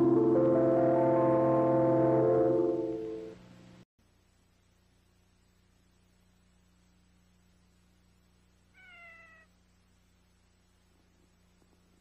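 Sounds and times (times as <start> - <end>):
faint low hum: 0.0 - 12.0
kitten meow: 8.8 - 9.5.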